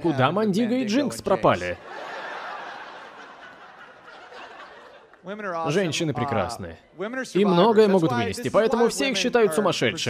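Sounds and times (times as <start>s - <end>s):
audience laughing: 1.8s - 5.3s.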